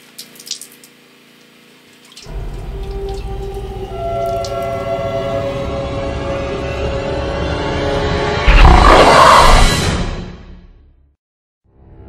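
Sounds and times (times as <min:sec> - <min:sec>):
droning horror score: 0:02.3 - 0:10.4
loud monster roar: 0:08.4 - 0:10.0.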